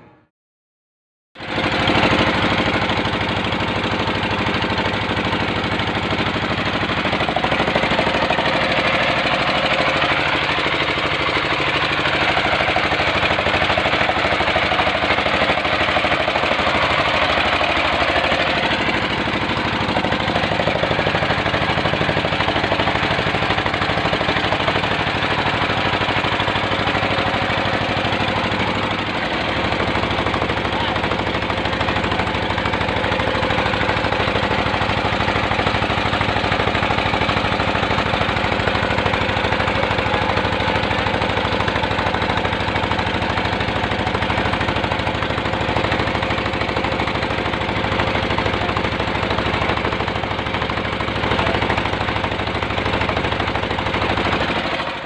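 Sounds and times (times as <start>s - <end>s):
boat engine knocking: 1.4s - 55.0s.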